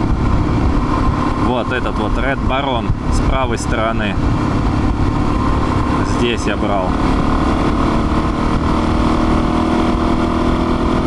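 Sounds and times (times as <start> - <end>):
motorcycle engine cruising: 0.0 - 11.0
wind rumbling on microphone: 0.0 - 11.0.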